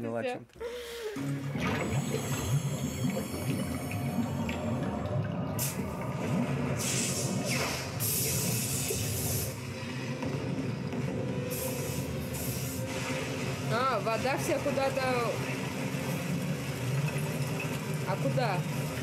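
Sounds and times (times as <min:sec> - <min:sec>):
rushing water effects: 0:01.3 - 0:19.0.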